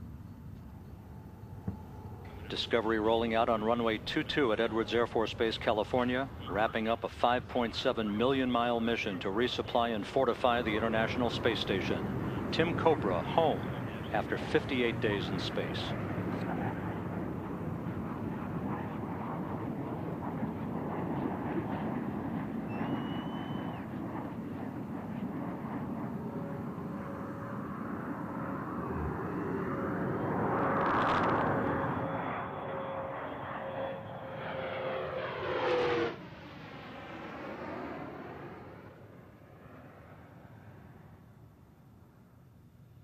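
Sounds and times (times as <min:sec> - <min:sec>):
jet aircraft rushing: 0:00.0 - 0:41.4
jet engine whine dropping in pitch: 0:00.0 - 0:42.2.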